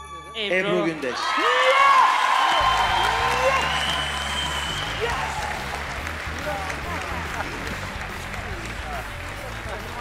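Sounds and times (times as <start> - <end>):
audience applauding: 1.1 - 10.0.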